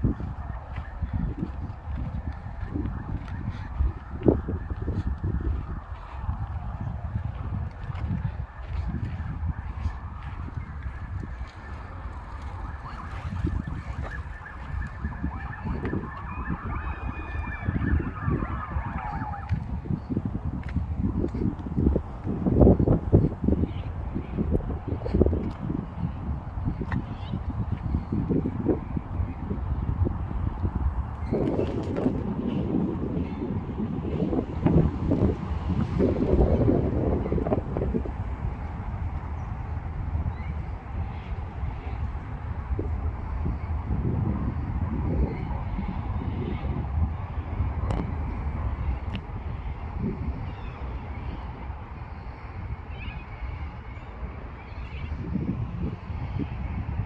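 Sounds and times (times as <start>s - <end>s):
emergency siren wailing: 0.0s - 26.4s, 27.3s - 57.0s
wind rumble on microphone: 0.0s - 57.0s.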